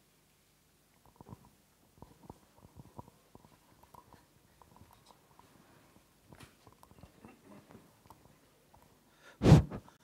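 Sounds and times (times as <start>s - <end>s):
faint knocks and rustles: 1.0s - 9.0s.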